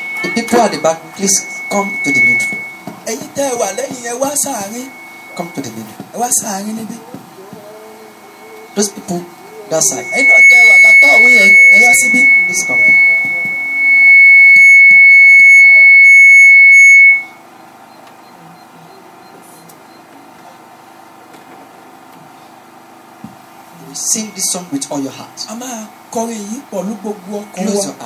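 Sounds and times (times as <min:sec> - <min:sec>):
low room noise: 0:00.0 - 0:16.4
high-pitched whine: 0:00.0 - 0:17.4, 0:23.7 - 0:28.0.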